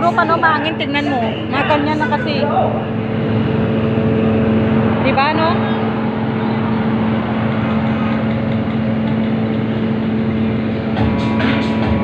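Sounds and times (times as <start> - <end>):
ferry machinery humming: 0.0 - 12.0.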